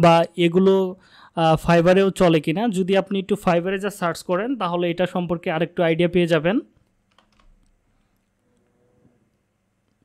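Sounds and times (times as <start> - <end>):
man speaking: 0.0 - 6.7
computer keyboard keystrokes: 7.1 - 7.7.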